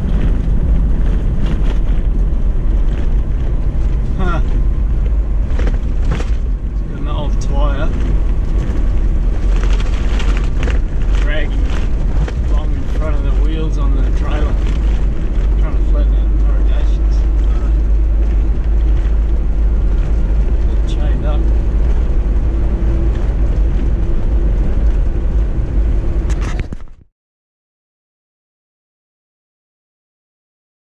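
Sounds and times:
wind buffeting microphone: 0.0 - 27.0
vehicle road rumble: 0.0 - 27.1.

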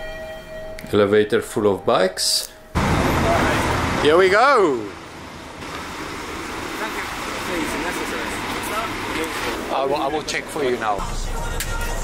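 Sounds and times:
road traffic noise: 2.7 - 12.0.

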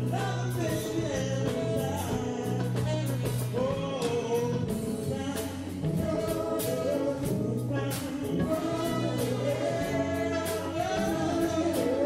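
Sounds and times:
drum kit with cymbal strikes: 0.0 - 12.0
electric bass: 0.0 - 12.0
keyboard: 0.0 - 12.0
woman singing: 0.1 - 12.0.

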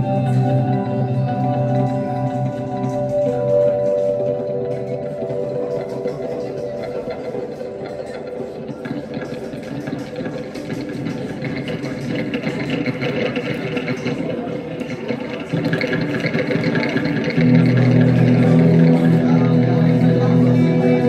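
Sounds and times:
sustained low chords: 0.0 - 8.8, 17.3 - 21.0
electric guitar: 0.0 - 21.0.

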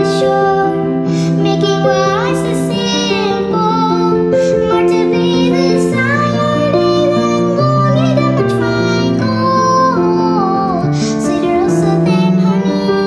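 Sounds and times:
young girl singing: 0.0 - 13.0.

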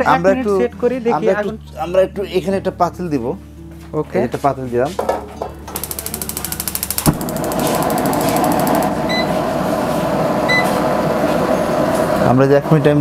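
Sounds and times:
gas stove igniter clicking: 5.7 - 9.1
gas flame rushing: 5.8 - 12.2.

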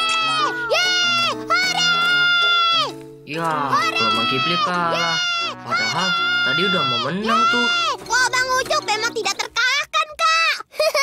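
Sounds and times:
child cheering: 0.0 - 3.0, 3.6 - 8.6
cheerful background music: 0.0 - 10.0.

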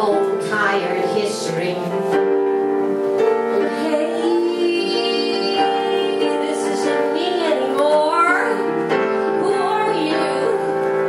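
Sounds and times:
woman singing into a microphone: 0.0 - 2.2, 3.5 - 11.0
upright piano: 0.0 - 11.0.

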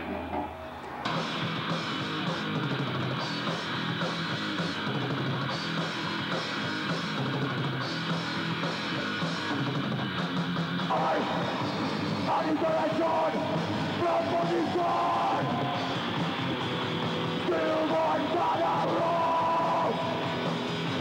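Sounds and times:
distorted electric guitars: 0.0 - 21.0
drum kit: 0.0 - 21.0
live metal band playing: 0.0 - 21.0.

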